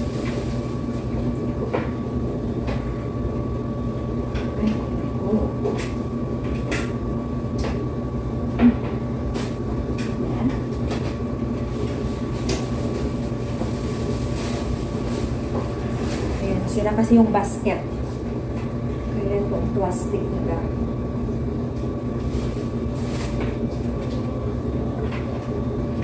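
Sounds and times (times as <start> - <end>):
low machine hum: 0.0 - 26.0.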